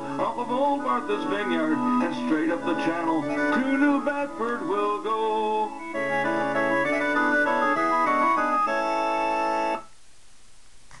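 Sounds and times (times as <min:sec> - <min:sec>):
organ keyboard chords and melody: 0:00.0 - 0:09.9
faint hiss: 0:08.8 - 0:11.0.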